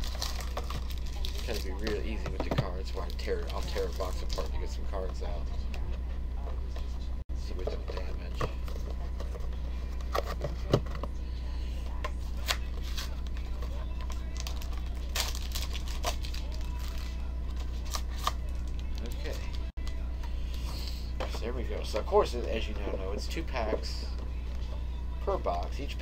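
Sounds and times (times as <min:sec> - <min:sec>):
foil card packs crinkling: 0:00.0 - 0:04.8, 0:12.4 - 0:19.7
steady low hum: 0:00.0 - 0:26.0.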